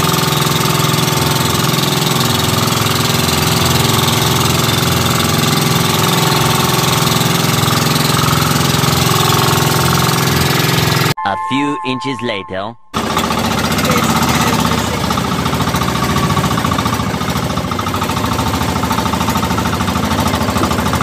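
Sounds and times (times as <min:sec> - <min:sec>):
boat engine running: 0:00.0 - 0:11.2, 0:13.0 - 0:21.0.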